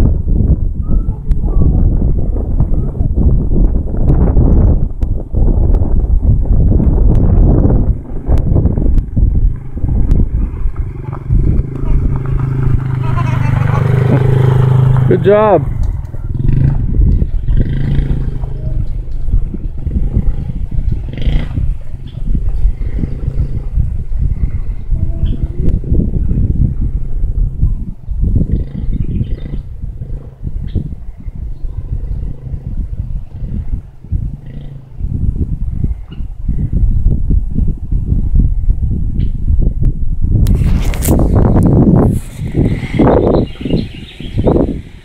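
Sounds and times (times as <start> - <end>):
wind buffeting microphone: 0.0 - 45.0
small motorbike engine riding away: 7.4 - 36.8, 40.6 - 45.0.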